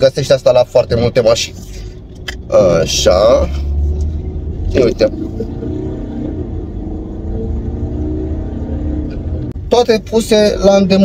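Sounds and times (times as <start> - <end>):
engine and road noise in car: 0.0 - 11.0.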